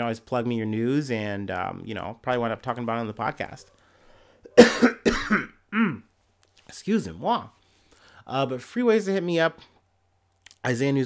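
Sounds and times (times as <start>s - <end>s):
man coughing: 4.5s - 6.1s.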